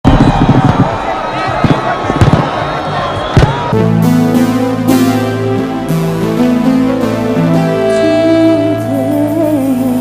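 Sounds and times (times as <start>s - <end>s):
electric keyboard chord: 3.8s - 10.0s.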